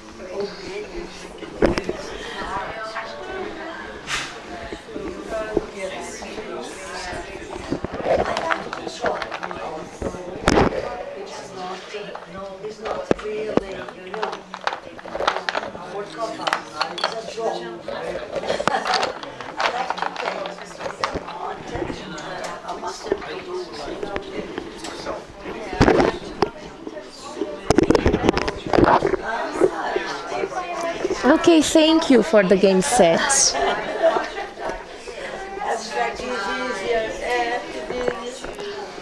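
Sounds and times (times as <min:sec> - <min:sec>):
overlapping chatter of many people: 0:00.0 - 0:39.0
people talking: 0:00.0 - 0:39.0.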